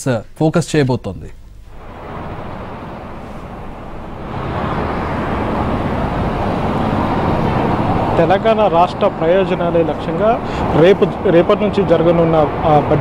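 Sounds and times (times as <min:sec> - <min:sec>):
vehicle engine and road noise: 0:01.4 - 0:13.0.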